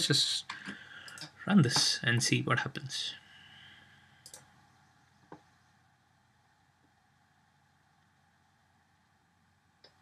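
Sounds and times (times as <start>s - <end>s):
faint background hiss: 0.0s - 10.0s
computer mouse click: 4.2s - 4.5s.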